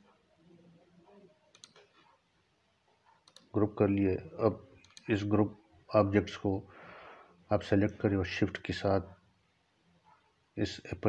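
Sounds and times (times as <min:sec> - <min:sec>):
computer mouse clicks: 0:01.5 - 0:02.1, 0:03.1 - 0:03.5, 0:04.8 - 0:05.1.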